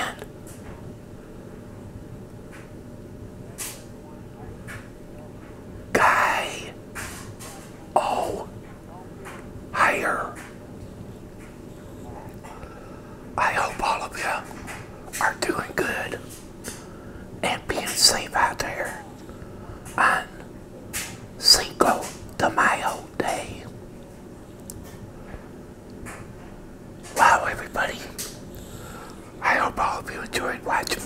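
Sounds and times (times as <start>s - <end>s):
man whispering: 0.0s - 0.3s, 5.9s - 6.8s, 7.9s - 8.5s, 9.7s - 10.6s, 13.4s - 16.4s, 17.4s - 20.4s, 21.4s - 23.7s, 27.1s - 31.0s.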